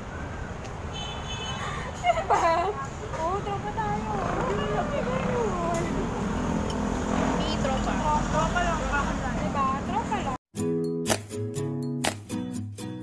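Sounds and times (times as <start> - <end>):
women talking and laughing: 1.6 - 6.1.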